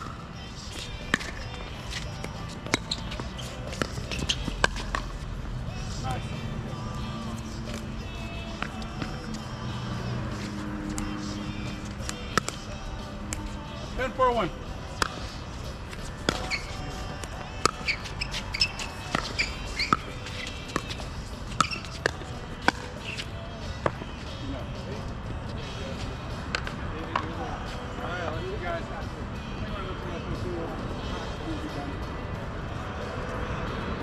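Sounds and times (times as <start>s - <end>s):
faint voices: 0.2s - 34.0s.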